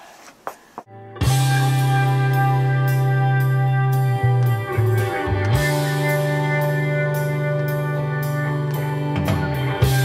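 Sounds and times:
electric guitar chord ringing: 1.0s - 10.0s.

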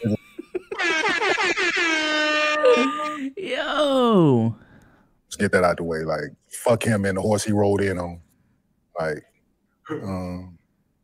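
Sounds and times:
high-pitched laughter: 0.0s - 3.2s.

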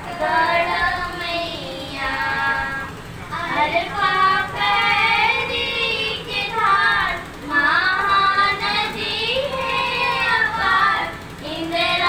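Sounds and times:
girls singing into microphones: 0.0s - 12.0s.

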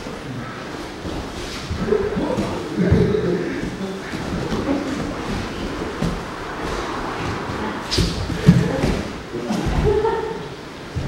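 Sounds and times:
cloth and bodies scraping mat: 0.8s - 10.3s
heavy thumps on mat: 2.2s - 10.1s.

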